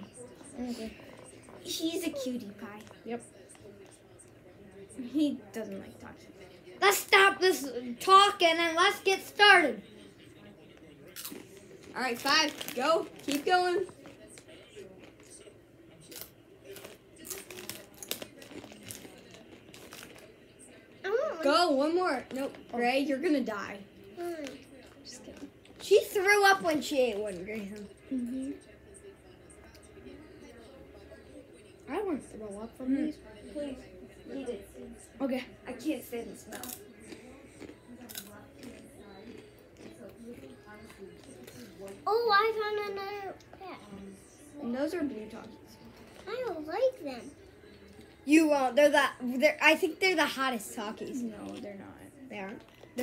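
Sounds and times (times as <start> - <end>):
faint voices talking quietly: 0.0 - 53.0
chips crunching: 11.1 - 14.2, 16.1 - 20.3, 36.5 - 40.5
chip bag crinkling: 11.2 - 14.2, 16.1 - 20.3.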